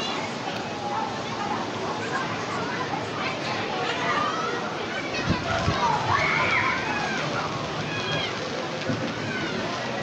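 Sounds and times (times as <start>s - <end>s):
rushing outdoor noise: 0.0s - 10.0s.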